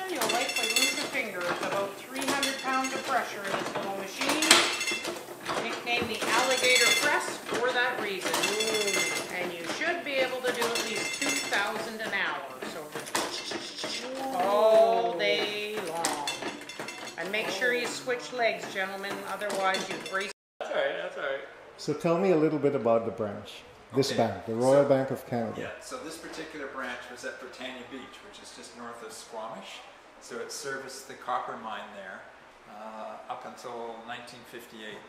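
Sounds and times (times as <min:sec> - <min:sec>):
voices: 0:00.0 - 0:16.6, 0:17.2 - 0:30.5
printing press clanking: 0:00.0 - 0:20.3.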